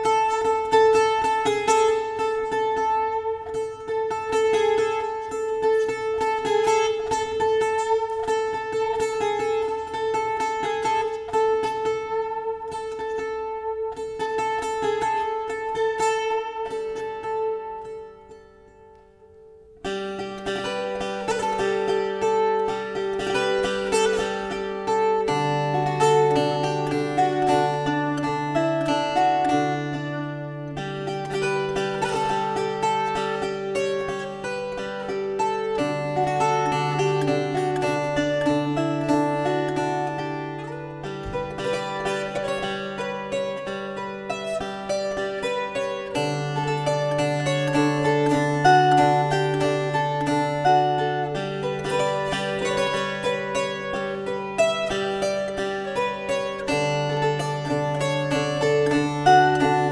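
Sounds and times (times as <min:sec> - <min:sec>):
solo guitar played with pick: 0:00.0 - 0:59.9.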